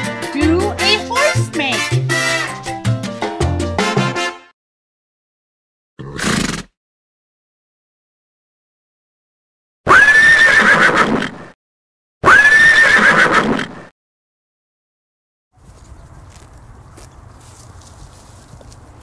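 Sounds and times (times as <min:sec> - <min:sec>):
horse neighing: 0:06.0 - 0:06.7, 0:09.9 - 0:11.4, 0:12.2 - 0:13.9.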